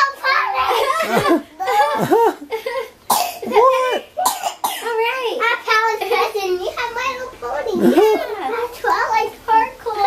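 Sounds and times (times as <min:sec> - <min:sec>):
girl making wordless sounds: 0:04.8 - 0:10.0.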